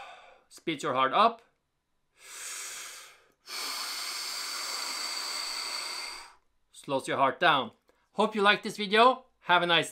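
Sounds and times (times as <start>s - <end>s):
man breathing slowly: 0.0s - 0.5s, 2.1s - 6.5s.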